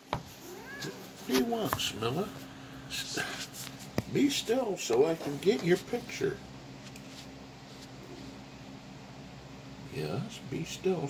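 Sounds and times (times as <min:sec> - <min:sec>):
cat meowing: 0:00.4 - 0:01.1.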